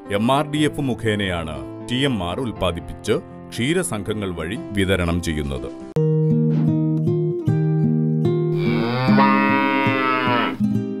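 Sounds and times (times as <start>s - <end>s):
plucked guitar music: 6.0s - 11.0s
cow mooing: 8.6s - 10.6s.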